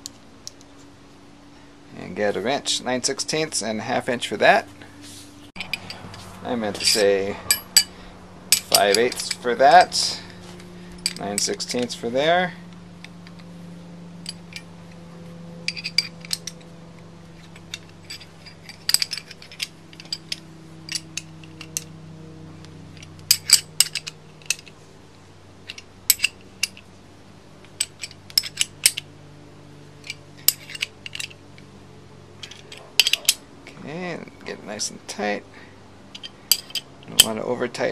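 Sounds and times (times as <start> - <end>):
steady low hum: 0.0 - 37.9
metal wrenches clinking: 5.6 - 13.4, 14.2 - 21.9, 22.9 - 24.8, 25.6 - 26.9, 27.6 - 29.1, 30.0 - 31.6, 32.4 - 33.4, 36.1 - 37.4.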